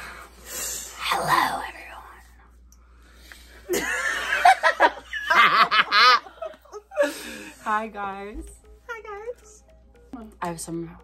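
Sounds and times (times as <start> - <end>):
young women giggling and laughing: 3.7 - 7.4.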